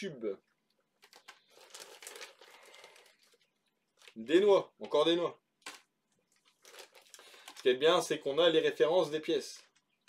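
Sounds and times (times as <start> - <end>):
plastic bags crinkling: 0.8 - 9.9.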